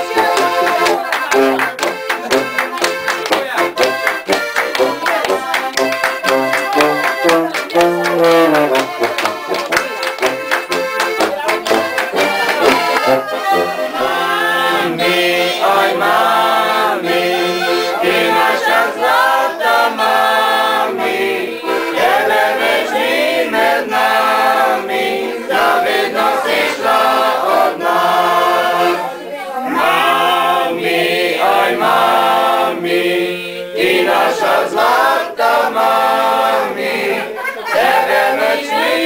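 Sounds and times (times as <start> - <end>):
group singing in chorus: 0.0 - 10.8, 11.6 - 39.0
accordion: 0.0 - 39.0.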